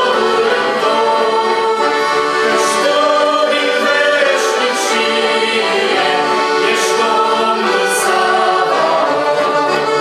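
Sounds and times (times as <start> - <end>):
accordion: 0.0 - 10.0
group singing a hymn: 0.0 - 10.0.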